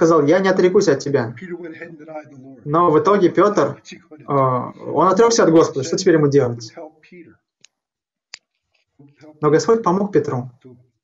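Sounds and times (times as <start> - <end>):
man speaking: 0.0 - 7.6, 8.9 - 11.0.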